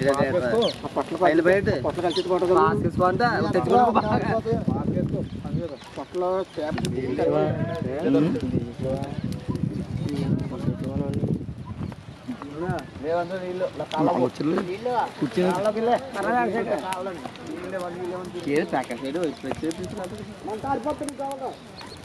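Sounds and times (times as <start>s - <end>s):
people talking: 0.0s - 11.3s, 12.3s - 21.6s
fire crackling: 0.0s - 22.0s.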